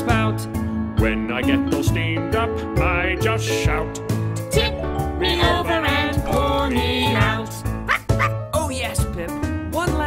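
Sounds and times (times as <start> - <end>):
children's music: 0.0 - 10.0
cartoon dog yipping and barking: 7.8 - 8.4.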